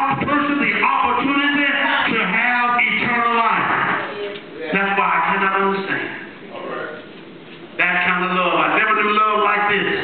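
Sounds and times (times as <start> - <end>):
man preaching into microphone: 0.0 - 6.4, 7.8 - 10.0.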